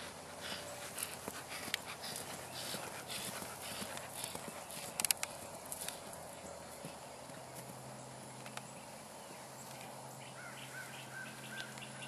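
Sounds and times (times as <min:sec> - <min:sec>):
muffled hoofbeats on grass: 0:00.0 - 0:09.8
steady low hum: 0:00.0 - 0:12.0.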